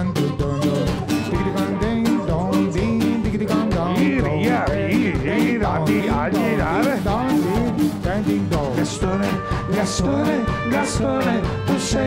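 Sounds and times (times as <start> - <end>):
live band playing ska-pop: 0.0 - 12.0
quick steady drum beat: 0.0 - 12.0
strummed acoustic guitar: 0.0 - 12.0.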